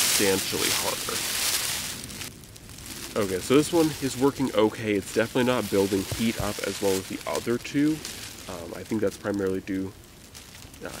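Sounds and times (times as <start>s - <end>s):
mylar blanket crinkling: 0.0s - 11.0s.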